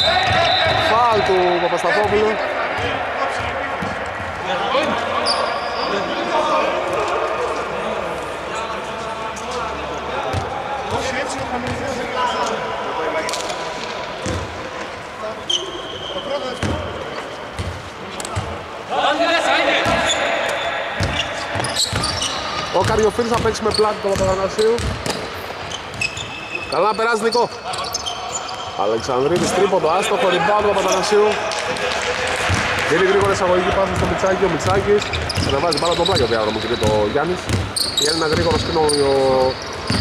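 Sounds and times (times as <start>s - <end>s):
players' voices: 0.0s - 40.0s
basketball bouncing on hardwood: 36.8s - 37.7s.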